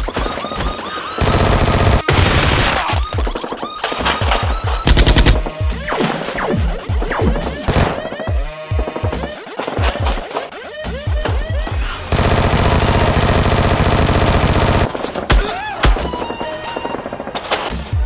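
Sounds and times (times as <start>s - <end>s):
background music: 0.0s - 18.0s
machine-gun fire: 1.2s - 3.0s, 12.1s - 14.9s.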